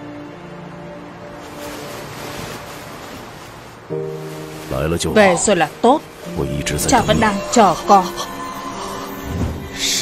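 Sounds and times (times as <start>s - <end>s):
held music notes: 0.0s - 10.0s
wind: 0.0s - 10.0s
waves: 0.1s - 6.4s.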